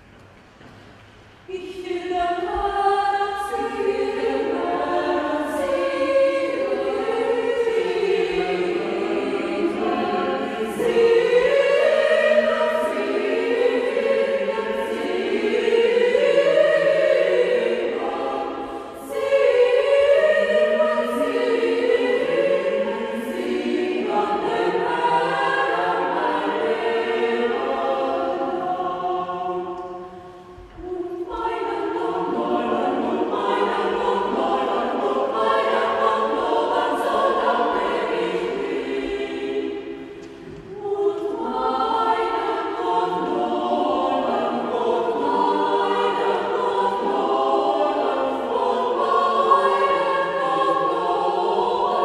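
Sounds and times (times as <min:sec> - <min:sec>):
mixed choir singing: 0:01.4 - 0:52.0.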